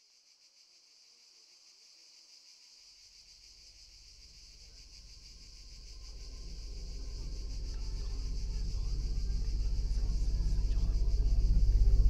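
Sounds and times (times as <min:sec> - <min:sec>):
crickets chirring: 0:00.0 - 0:12.0
low hum: 0:04.6 - 0:12.0.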